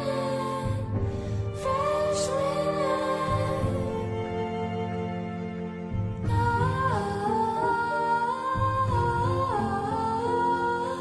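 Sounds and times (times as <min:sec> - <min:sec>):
woman singing slow melody: 0:00.0 - 0:04.6, 0:06.2 - 0:11.0
soft low accompaniment: 0:00.0 - 0:11.0.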